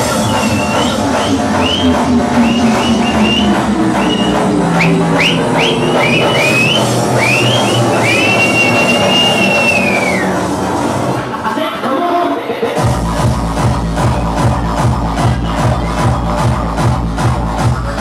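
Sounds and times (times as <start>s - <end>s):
loud hard dance music: 0.0s - 18.0s.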